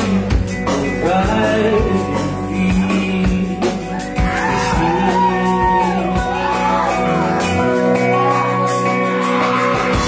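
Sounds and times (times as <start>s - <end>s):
sliding lead guitar line: 0.0s - 10.0s.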